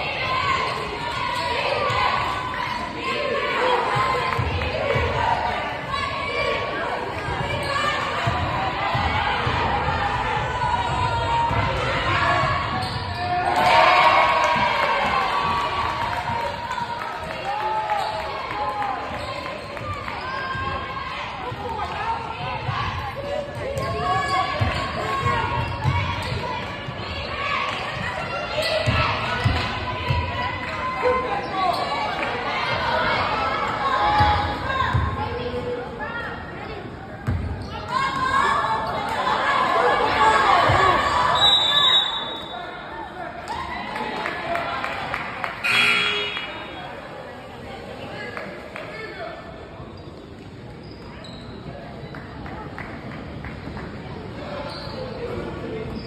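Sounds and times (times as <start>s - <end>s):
spectators' voices: 0.0s - 56.0s
sneaker squeaks: 12.4s - 13.7s, 31.1s - 32.2s, 37.2s - 38.2s, 45.6s - 46.9s, 49.9s - 52.2s, 54.4s - 56.0s.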